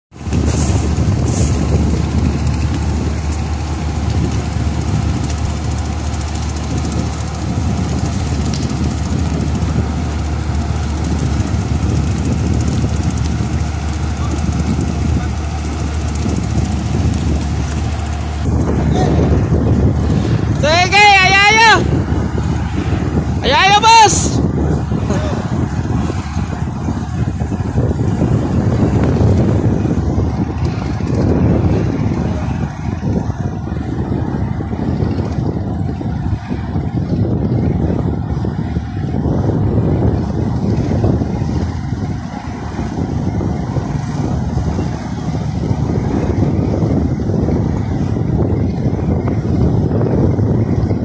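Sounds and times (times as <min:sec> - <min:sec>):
marine diesel engines droning: 0:00.1 - 0:51.0.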